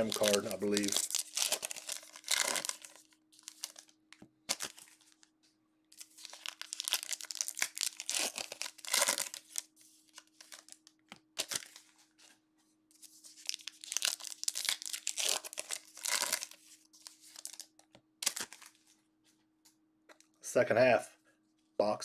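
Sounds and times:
foil wrapper tearing and crinkling: 0:00.0 - 0:05.2, 0:06.0 - 0:11.8, 0:13.3 - 0:18.8.

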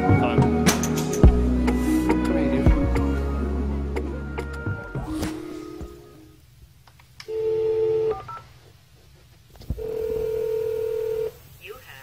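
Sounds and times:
steady telephone tone: 0:07.3 - 0:08.4, 0:09.8 - 0:11.4
telephone dial tone: 0:09.8 - 0:11.4.

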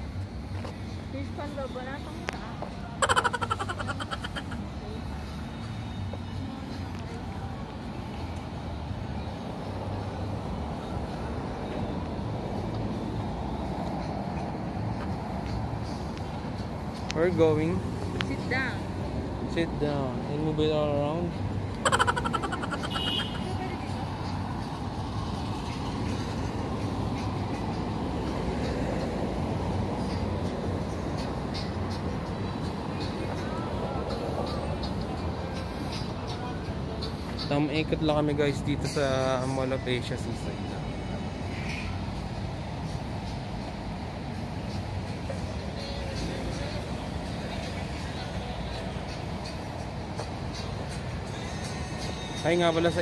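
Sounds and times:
cars on a nearby road: 0:00.0 - 0:53.0.

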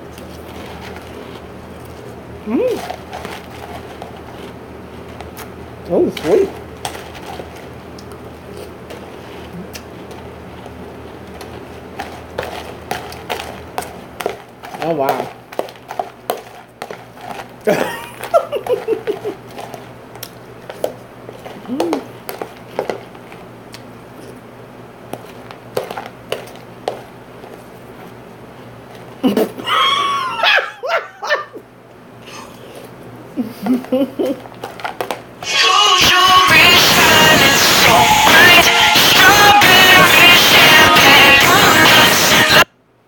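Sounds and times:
spoon scraping plastic container: 0:00.0 - 0:05.5, 0:06.1 - 0:20.0, 0:20.6 - 0:23.5, 0:25.1 - 0:28.2, 0:34.4 - 0:41.8
chewing crunchy cereal: 0:00.0 - 0:24.4, 0:25.0 - 0:29.5, 0:33.8 - 0:42.0.

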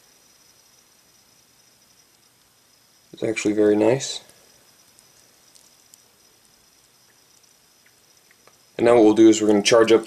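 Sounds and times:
steady high whine: 0:00.0 - 0:10.0
tiny faint ticks: 0:04.2 - 0:08.7.

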